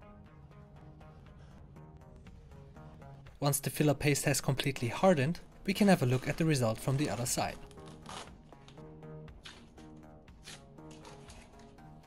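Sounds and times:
soft background music: 0.0 - 12.0
tape tearing off ceiling: 6.0 - 8.8.

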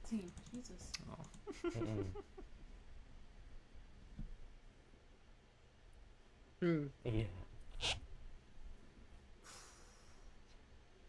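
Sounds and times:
person vocal sound: 6.6 - 7.4.

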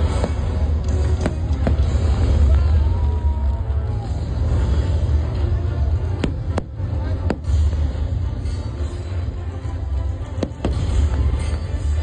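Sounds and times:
fireworks rumbling: 0.0 - 9.2, 10.1 - 12.0.

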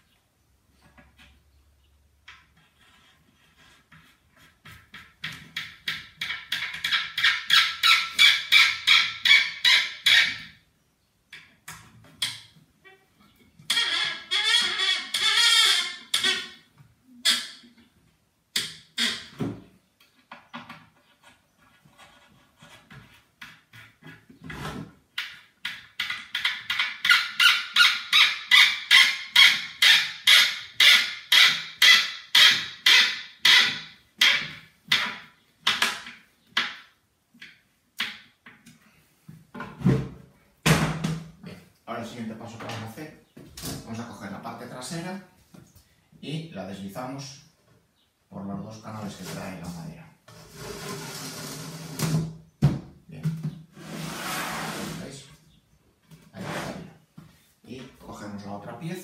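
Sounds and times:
screw squeaking into board: 13.7 - 17.8, 25.6 - 35.9.

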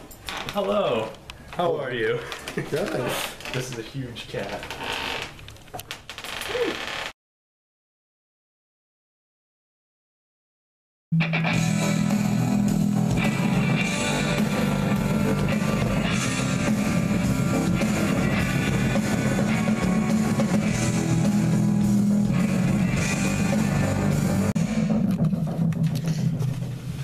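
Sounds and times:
rock music: 11.1 - 26.2.

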